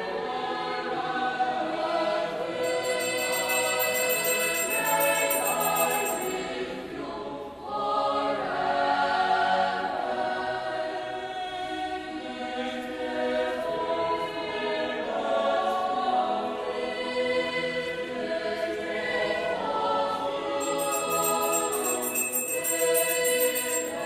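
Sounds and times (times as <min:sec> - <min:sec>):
choir singing long chords: 0:00.0 - 0:24.0
high bell-like shimmer: 0:02.6 - 0:06.6, 0:20.6 - 0:24.0.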